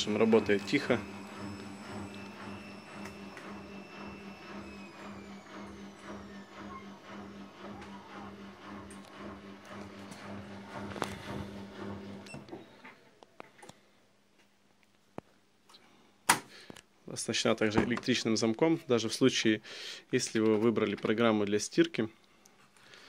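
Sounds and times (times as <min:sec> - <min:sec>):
washing machine spinning: 0:00.0 - 0:12.8.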